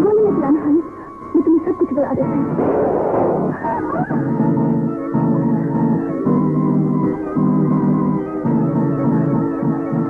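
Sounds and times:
dramatic film music: 0:00.0 - 0:09.8.

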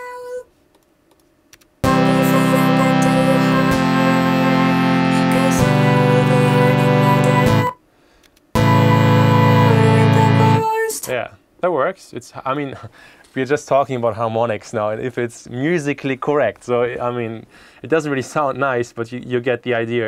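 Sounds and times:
person singing: 0:01.8 - 0:07.8, 0:08.6 - 0:11.1
sustained chords: 0:01.8 - 0:07.8, 0:08.6 - 0:10.7.

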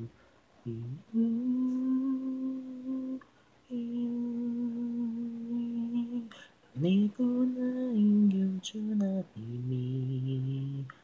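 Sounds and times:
person humming: 0:00.7 - 0:11.0.

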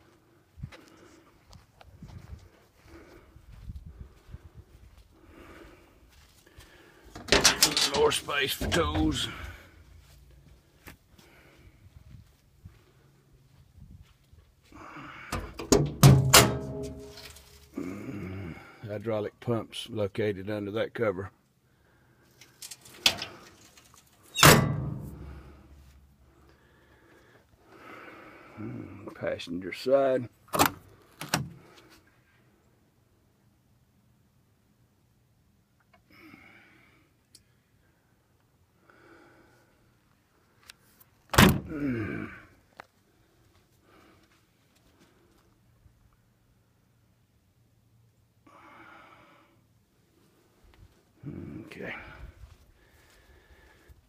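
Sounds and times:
metal compartment door slamming: 0:07.2 - 0:09.3, 0:15.3 - 0:17.2, 0:24.4 - 0:25.4, 0:41.3 - 0:41.7.

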